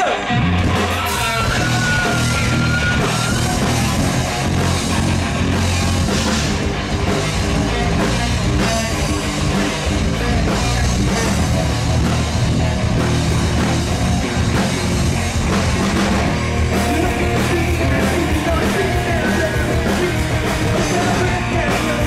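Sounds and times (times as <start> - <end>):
drum kit beat: 0.0 - 22.0
electric guitars: 0.0 - 22.0.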